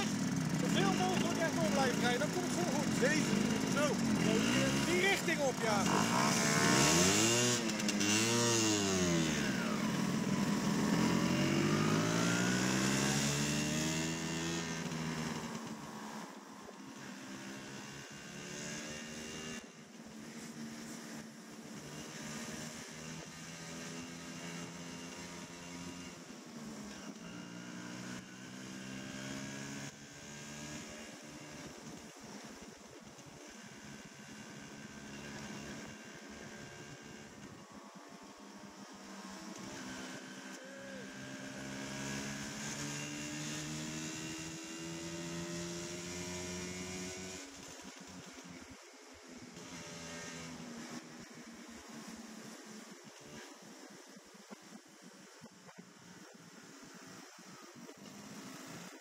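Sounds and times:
motor scooter engine running: 0.0 - 16.2.

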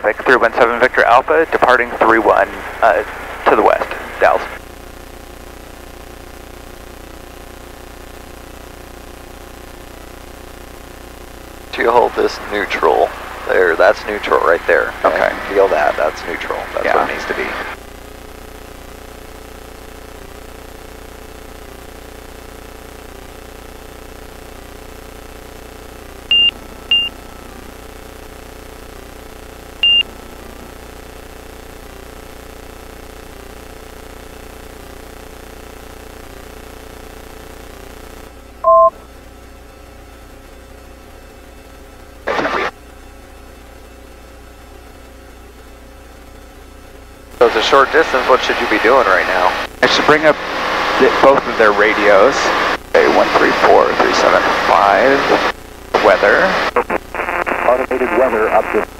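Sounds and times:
two-tone beep: 26.3 - 27.1, 29.8 - 30.1, 38.6 - 39.0.

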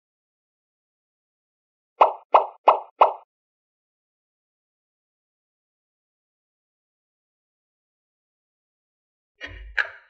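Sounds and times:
cartoon pop sound effect: 2.0 - 3.2.

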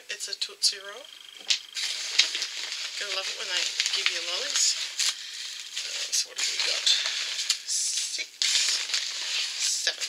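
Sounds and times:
plastic packaging crinkling: 1.4 - 10.0.

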